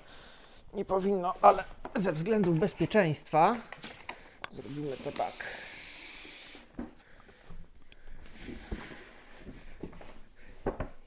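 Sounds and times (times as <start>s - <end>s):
cardboard sliding: 8.2s - 11.0s.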